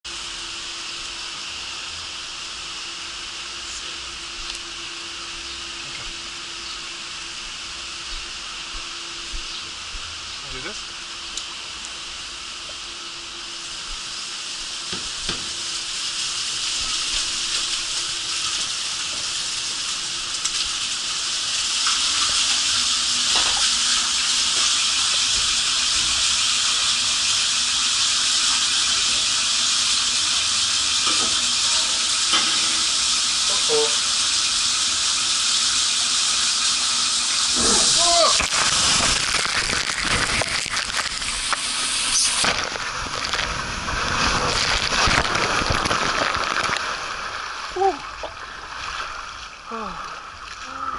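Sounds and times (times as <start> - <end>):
water rushing into slide tube: 13.7 - 50.9.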